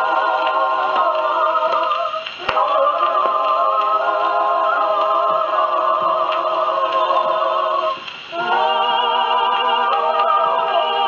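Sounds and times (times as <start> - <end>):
dance record on a gramophone: 0.0 - 11.0.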